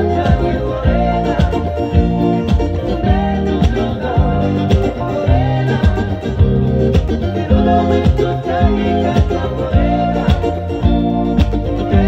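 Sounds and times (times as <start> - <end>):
backing track with bass and beat: 0.0 - 12.0
electric guitar: 0.0 - 12.0.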